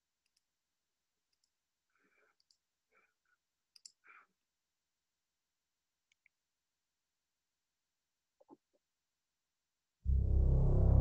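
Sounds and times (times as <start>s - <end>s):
faint clicks in pairs: 0.2s - 0.6s, 1.3s - 1.6s, 2.3s - 2.7s, 3.7s - 4.1s, 6.0s - 6.4s.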